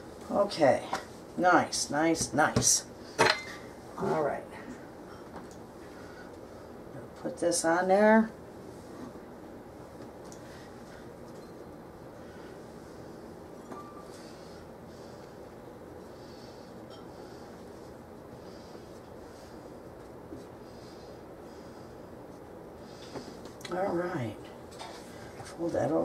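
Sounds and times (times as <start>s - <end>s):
steady room hum: 0.0s - 26.0s.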